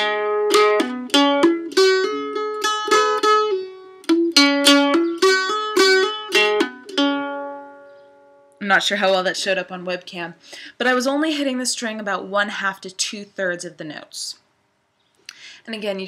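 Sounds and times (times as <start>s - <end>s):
mandolin melody: 0.0s - 10.2s.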